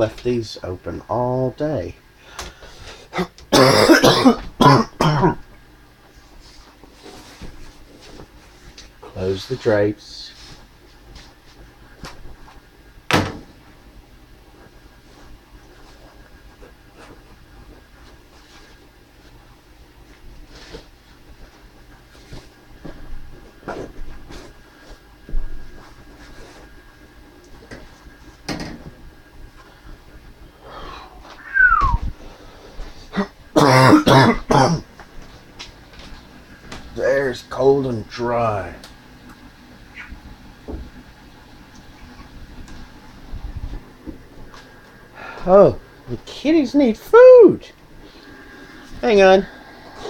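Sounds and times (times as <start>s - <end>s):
man coughing hard: 3.2s - 5.4s, 33.2s - 34.9s.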